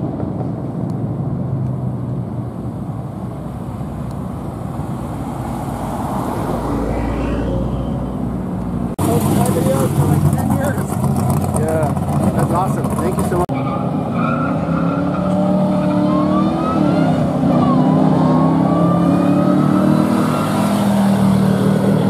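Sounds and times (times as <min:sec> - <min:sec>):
race car engines running: 0:08.2 - 0:22.0
engine accelerating: 0:09.0 - 0:13.5
people talking: 0:09.0 - 0:13.5.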